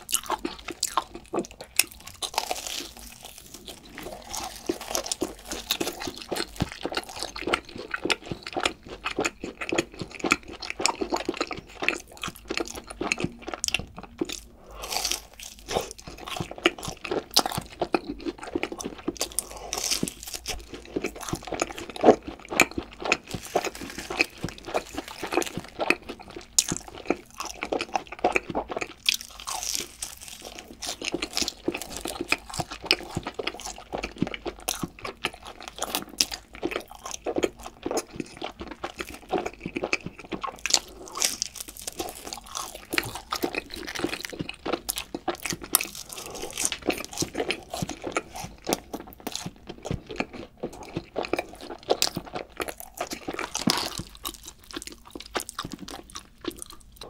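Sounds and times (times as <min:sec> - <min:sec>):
crunching and chewing fried chicken: 0:00.0 - 0:57.0.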